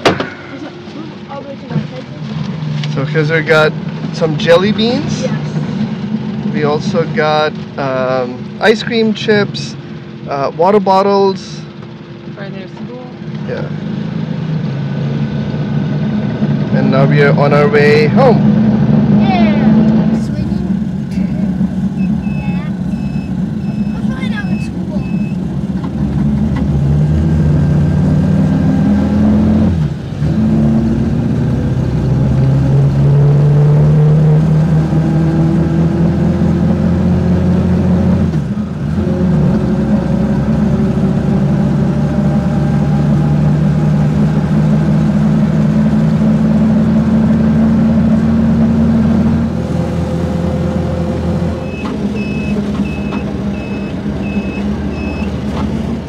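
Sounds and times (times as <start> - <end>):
auto rickshaw engine: 0.0 - 56.0
short electronic beep: 22.0 - 25.4, 51.6 - 55.3.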